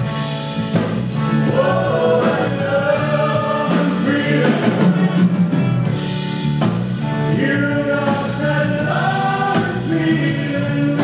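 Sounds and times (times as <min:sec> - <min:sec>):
bass: 0:00.0 - 0:11.0
drums: 0:00.0 - 0:11.0
guitars: 0:00.0 - 0:11.0
choir holding long sung notes: 0:01.4 - 0:05.0, 0:07.3 - 0:11.0.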